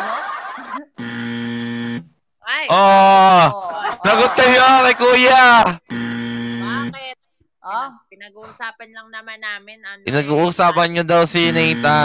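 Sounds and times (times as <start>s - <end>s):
low buzzing hum: 1.0s - 2.1s, 5.9s - 7.0s, 11.2s - 12.0s.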